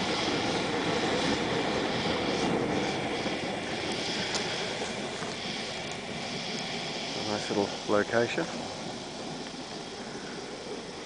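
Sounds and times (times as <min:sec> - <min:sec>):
wood stove roaring: 0:00.0 - 0:11.0.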